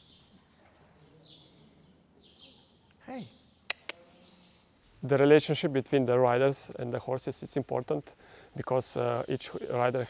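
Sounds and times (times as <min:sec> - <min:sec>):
faint bird chirps: 0:00.0 - 0:04.9.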